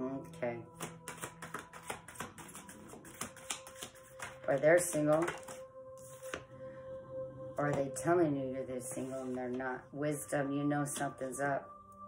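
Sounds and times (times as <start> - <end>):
cards being shuffled: 0.8 - 6.4.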